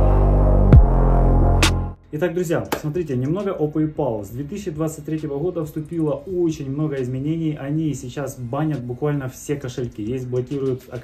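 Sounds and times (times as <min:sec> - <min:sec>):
loud low electronic drone: 0:00.0 - 0:02.0.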